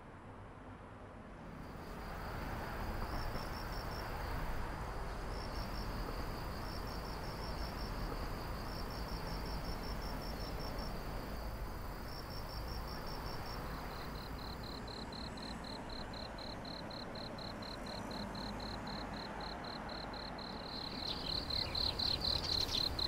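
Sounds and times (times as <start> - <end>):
crickets chirping: 1.6 - 23.0
steady high insect trill: 1.6 - 23.0.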